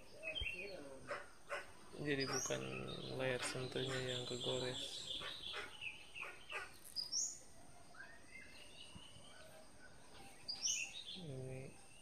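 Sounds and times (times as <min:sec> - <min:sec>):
sharp high bird calls: 0:00.0 - 0:11.3
small birds chirping: 0:00.0 - 0:12.0.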